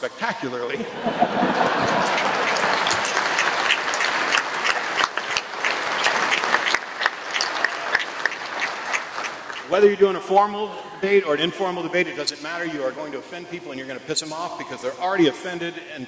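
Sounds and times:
audience laughing: 0.7 - 5.1
audience applauding: 0.9 - 9.7.

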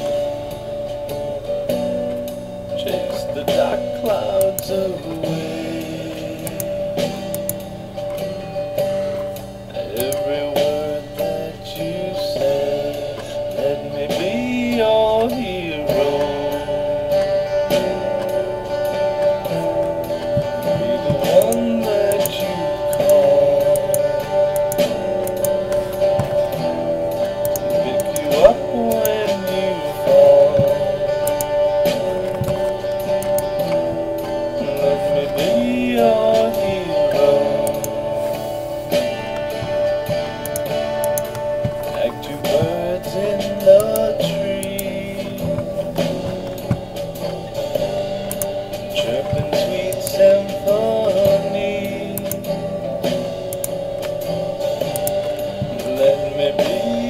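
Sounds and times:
plucked string instrument: 0.0 - 57.0
rock song with guitar and drums: 0.0 - 57.0.

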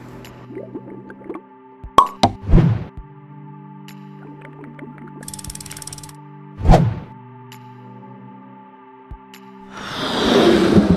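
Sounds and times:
background music: 0.0 - 10.9.

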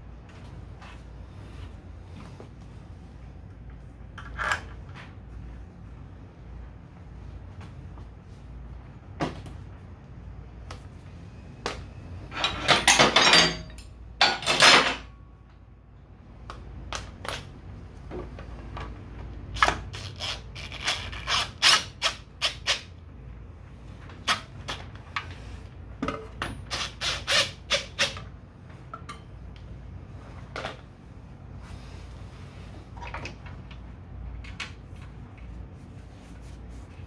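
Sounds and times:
metal tools clinking: 12.3 - 15.1.

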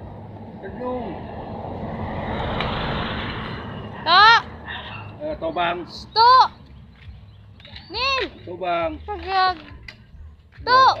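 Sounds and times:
vehicle engine and road noise: 0.0 - 11.0.

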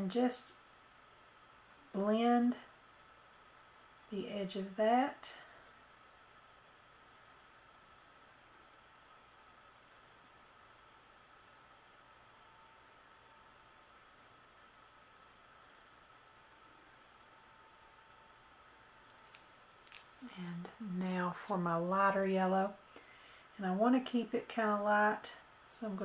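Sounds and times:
faint high whine: 0.0 - 26.0
room hiss: 0.0 - 26.0.

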